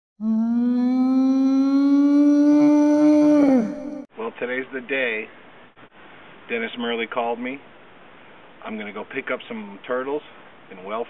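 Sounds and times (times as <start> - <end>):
whale call: 0.2 - 4.1.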